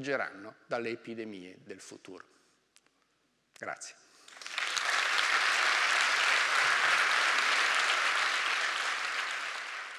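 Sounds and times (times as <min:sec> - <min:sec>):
audience applauding: 0:04.3 - 0:09.9.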